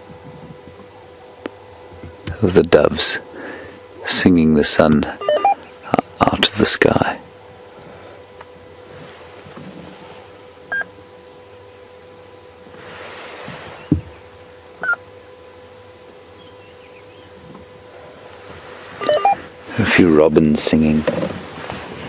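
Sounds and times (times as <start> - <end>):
steady electrical hum: 0.0 - 22.0.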